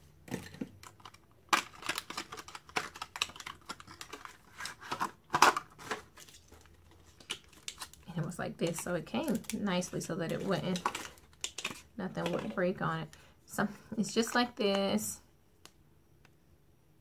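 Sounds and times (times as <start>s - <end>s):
plastic packaging crinkling and tearing: 0.3s - 12.5s.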